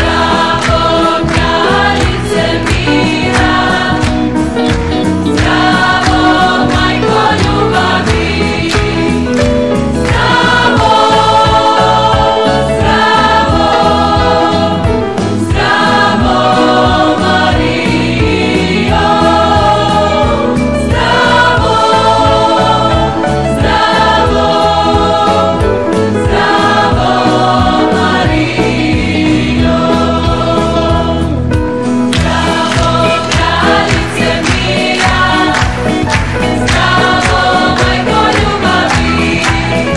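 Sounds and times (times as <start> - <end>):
choir singing with instruments: 0.0 - 39.9.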